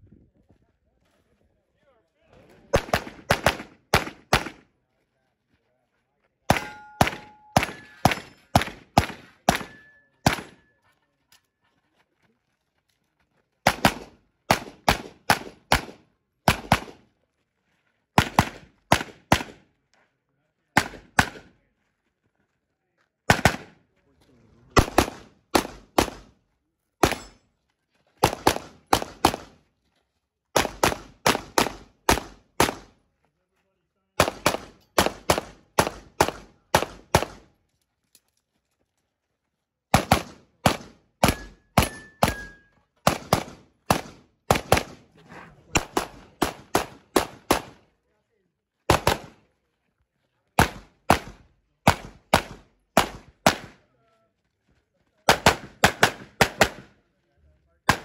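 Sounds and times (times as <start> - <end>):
pistol shots: 2.7 - 4.6, 6.5 - 10.6, 13.6 - 17.0, 18.2 - 19.6, 20.8 - 21.5, 23.3 - 23.8, 24.8 - 26.3, 27.0 - 27.4, 28.2 - 29.6, 30.6 - 33.0, 34.2 - 37.5, 39.9 - 45.1, 45.7 - 47.9, 48.9 - 49.4, 50.6 - 53.8, 55.3 - 56.9
metallic ring of steel targets: 6.5 - 8.6, 9.6 - 10.8, 41.2 - 42.7.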